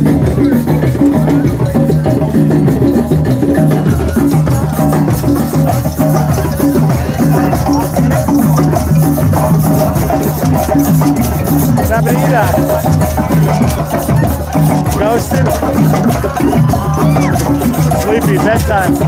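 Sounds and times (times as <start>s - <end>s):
drum circle hand drums: 0.0s - 19.0s.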